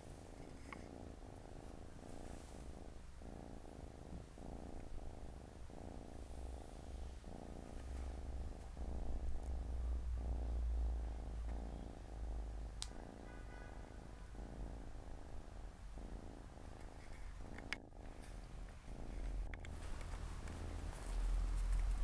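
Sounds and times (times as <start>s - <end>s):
cats purring: 0.0s - 22.0s.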